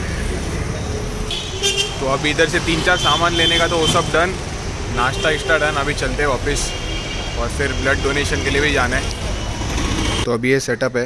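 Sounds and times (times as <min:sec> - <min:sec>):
street traffic rumble: 0:00.0 - 0:10.3
vehicle horn: 0:01.3 - 0:04.2, 0:05.0 - 0:10.2.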